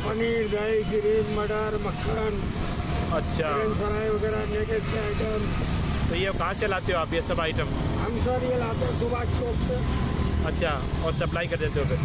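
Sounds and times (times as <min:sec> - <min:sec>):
road and wind noise: 0:00.0 - 0:12.0
voices talking: 0:00.0 - 0:12.0.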